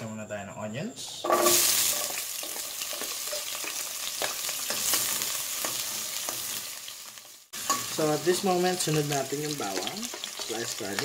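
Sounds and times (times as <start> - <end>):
onions sizzling in a pot: 1.2 - 11.0.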